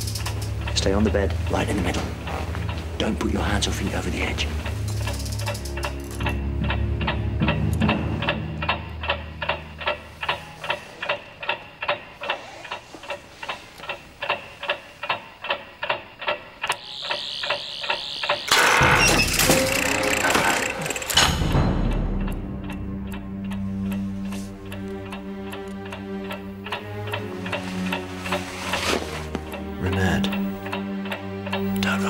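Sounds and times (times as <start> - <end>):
clockwork ticking: 0.0 - 32.0
low orchestral notes: 0.1 - 11.2, 19.3 - 32.0.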